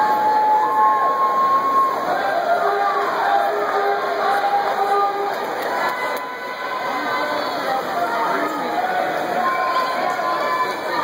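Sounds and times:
crowd cheering: 0:00.0 - 0:11.0
long drawn-out shouts: 0:00.0 - 0:11.0.

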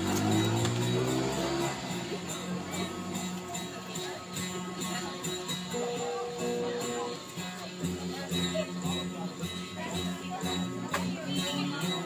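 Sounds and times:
plucked guitar: 0:00.0 - 0:12.0.

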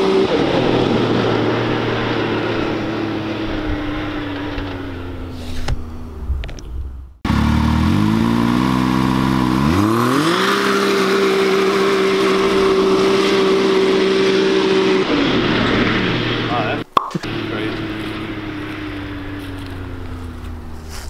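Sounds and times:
engine accelerating hard: 0:00.0 - 0:05.2, 0:07.2 - 0:21.0.

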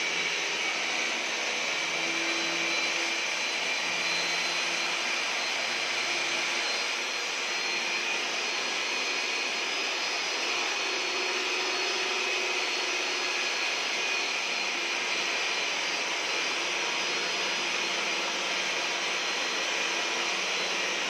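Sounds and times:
core drill boring into masonry: 0:00.0 - 0:21.0.

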